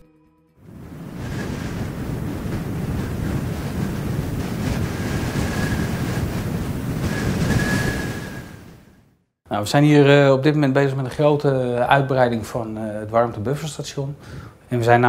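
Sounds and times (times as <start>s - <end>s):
wind blowing across microphone: 0.6s - 9.0s
faint thin whistle: 7.0s - 8.6s.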